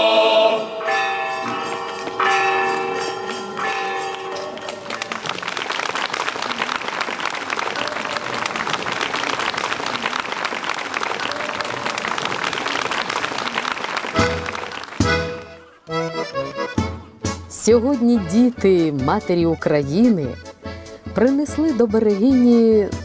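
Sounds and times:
choir singing chords: 0:00.0 - 0:01.6
audience applause: 0:04.0 - 0:15.8.

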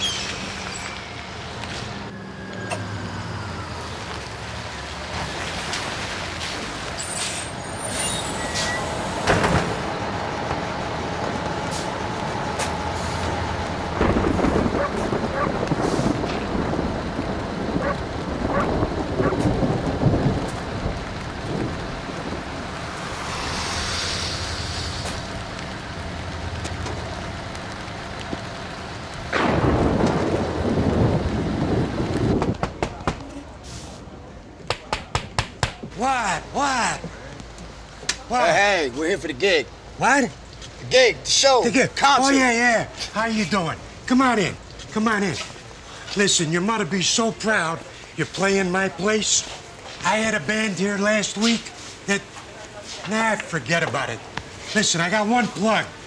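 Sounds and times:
high brake squeal: 0:00.0 - 0:03.9, 0:06.4 - 0:09.4
bus engine running: 0:00.4 - 0:34.6
air brakes hissing: 0:06.4 - 0:09.8, 0:12.6 - 0:13.5, 0:22.9 - 0:25.4, 0:33.6 - 0:34.1.

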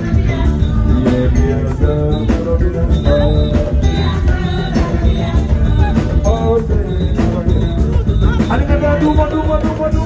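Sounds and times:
bass guitar: 0:00.0 - 0:10.0
drum kit beat: 0:00.0 - 0:10.0.

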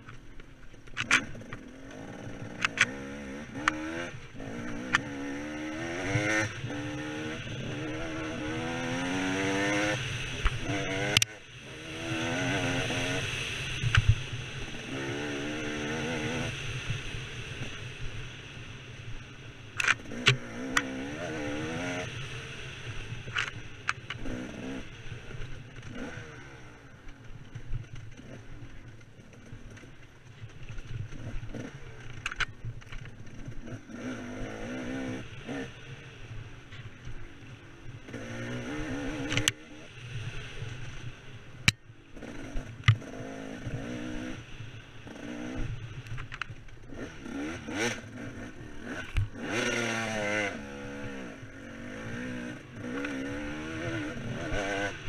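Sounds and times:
dirt bike engine revving: 0:01.0 - 0:17.7, 0:19.8 - 0:26.8, 0:31.1 - 0:32.6, 0:33.3 - 0:36.1, 0:38.0 - 0:41.0, 0:42.1 - 0:45.8, 0:46.8 - 0:55.0.

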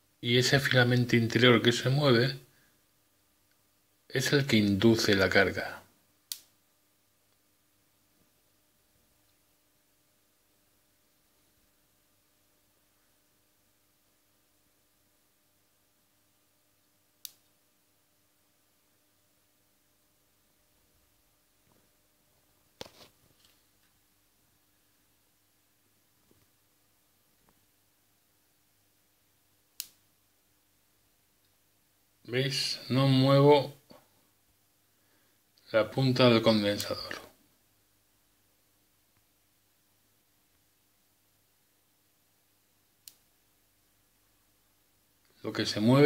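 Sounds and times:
faint steady hum: 0:00.0 - 0:46.0.

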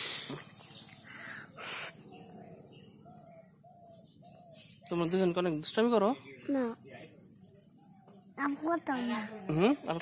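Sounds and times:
bird calling: 0:00.5 - 0:05.3.

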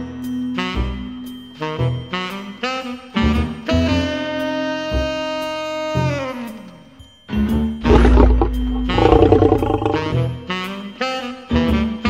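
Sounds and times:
rough growling sound: 0:07.8 - 0:10.2.

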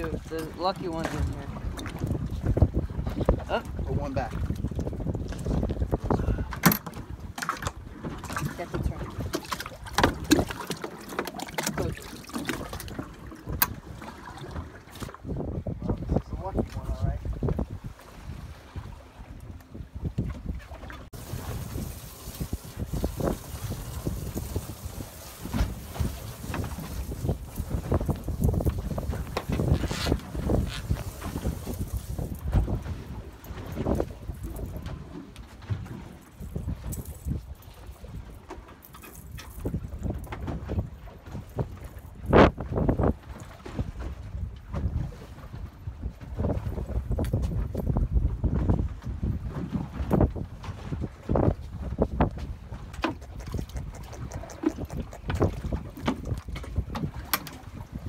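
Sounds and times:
wind gusting over microphone: 0:00.0 - 0:10.7, 0:11.5 - 0:38.4, 0:39.4 - 0:58.0
water moving against hull: 0:00.0 - 0:58.0.

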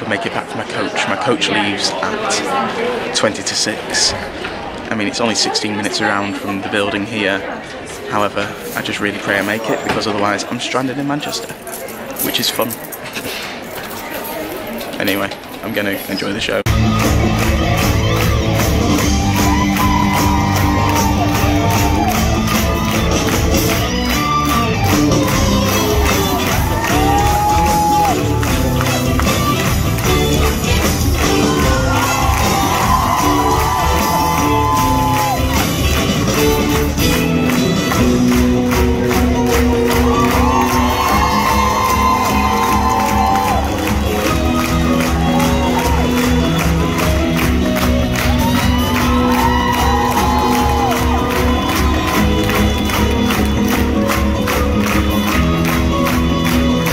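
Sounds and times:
crowd cheering: 0:16.7 - 0:56.9
live band playing upbeat music: 0:16.7 - 0:56.9.

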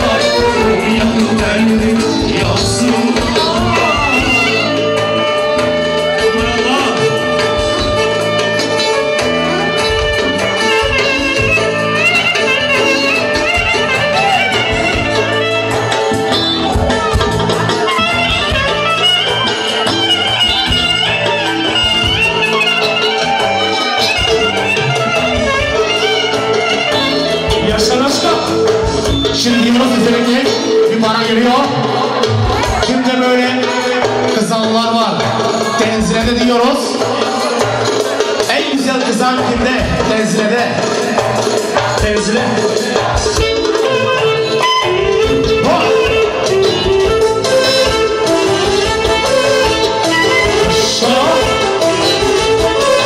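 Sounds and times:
live band dance music: 0:00.0 - 0:53.0.

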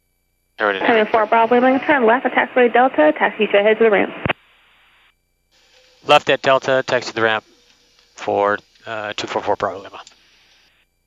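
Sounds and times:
radio transmission voice: 0:00.6 - 0:04.2, 0:06.1 - 0:07.4, 0:08.2 - 0:10.1
faint radio hiss: 0:00.6 - 0:05.0, 0:05.7 - 0:10.8.

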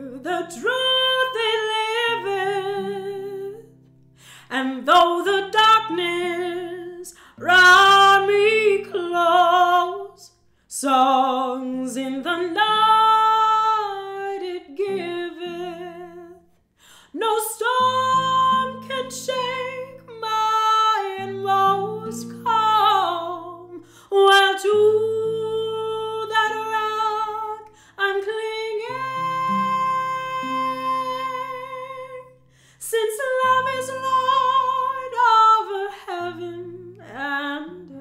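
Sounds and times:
woman singing a slow hymn: 0:00.0 - 0:03.8, 0:04.4 - 0:38.0
fingerpicked acoustic guitar: 0:00.1 - 0:10.2, 0:12.0 - 0:16.6, 0:17.4 - 0:32.6, 0:33.2 - 0:38.0.

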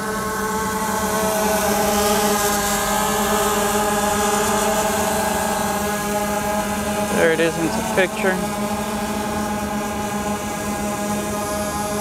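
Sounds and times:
drone propellers buzzing: 0:00.0 - 0:12.0.

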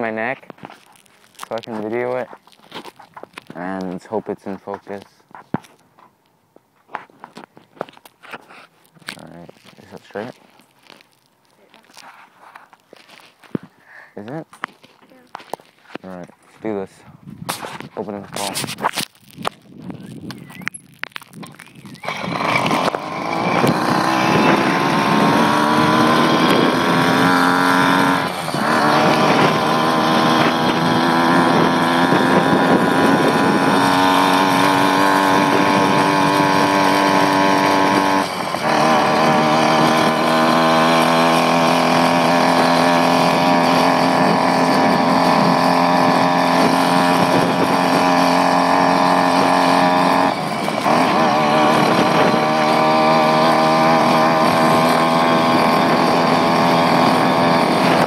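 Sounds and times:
motorized bicycle engine revving: 0:20.0 - 0:58.0.

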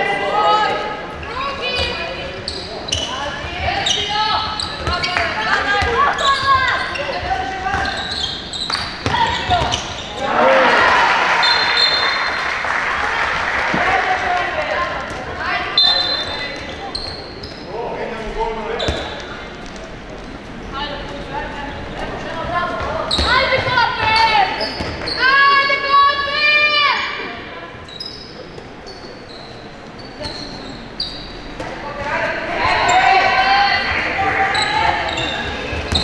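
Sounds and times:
players and spectators shouting: 0:09.1 - 0:12.4, 0:32.1 - 0:35.7.

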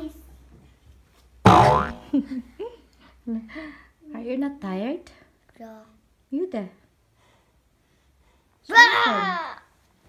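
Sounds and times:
cartoon boing sound effect: 0:01.5 - 0:02.1.

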